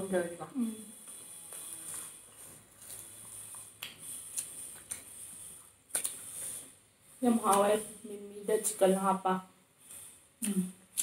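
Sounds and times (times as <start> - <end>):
soft chewing: 1.0 - 7.7.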